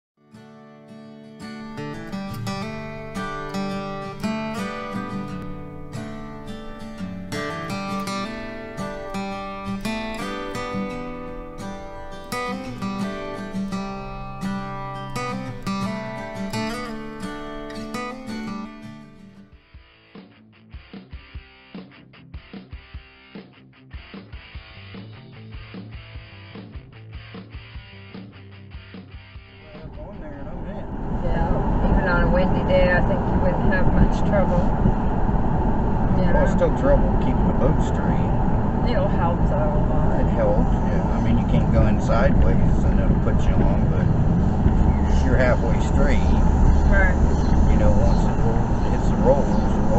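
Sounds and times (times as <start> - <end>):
acoustic guitar music: 0.2 - 30.1, 31.4 - 49.9
intro music with a beat: 11.0 - 29.6
voices: 29.6 - 49.9
car driving rumble from cabin: 29.7 - 49.9.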